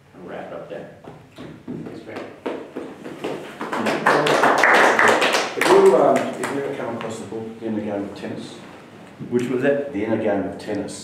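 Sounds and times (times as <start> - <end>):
audience applauding: 3.0 - 6.6.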